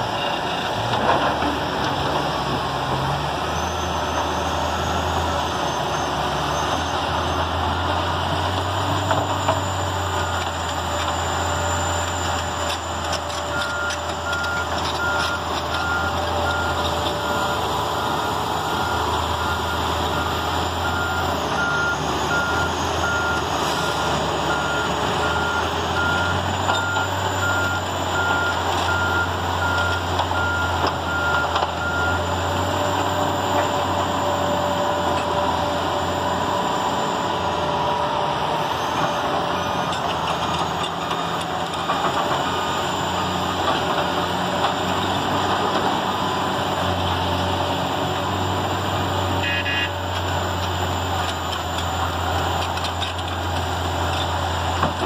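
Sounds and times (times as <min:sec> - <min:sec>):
diesel engines running: 0:00.0 - 0:55.0.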